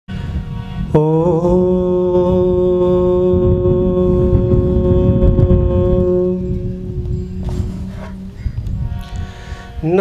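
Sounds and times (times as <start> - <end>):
harmonium playing reedy chords: 0.1 - 10.0.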